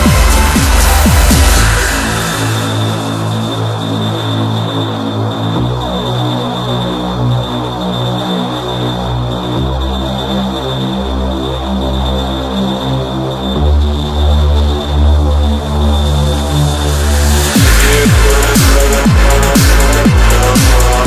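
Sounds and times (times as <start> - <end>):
dark electronic synth music: 0.0 - 21.0.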